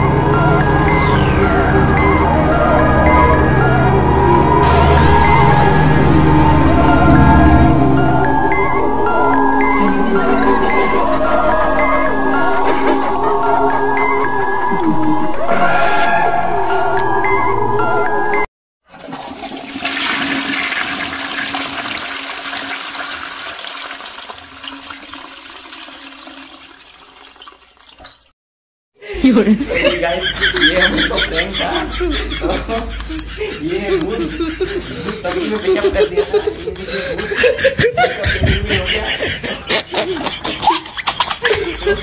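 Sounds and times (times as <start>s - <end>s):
boys laughing: 9.7s - 11.3s, 29.0s - 42.0s.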